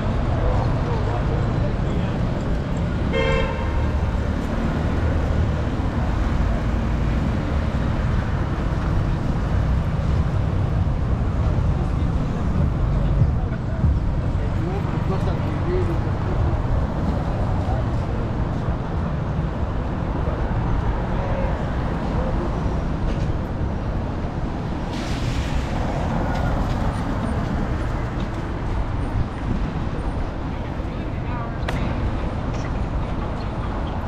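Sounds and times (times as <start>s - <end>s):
traffic rumble: 0.0s - 34.0s
voices of passers-by: 0.0s - 34.0s
passing vehicle hiss: 24.6s - 27.8s.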